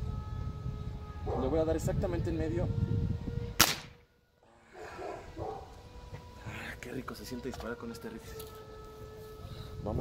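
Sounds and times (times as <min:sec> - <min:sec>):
air rifle shot: 0:03.6 - 0:04.0.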